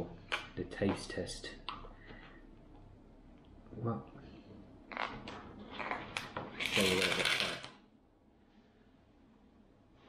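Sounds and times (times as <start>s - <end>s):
spoon scraping in foil pouch: 6.6s - 7.5s.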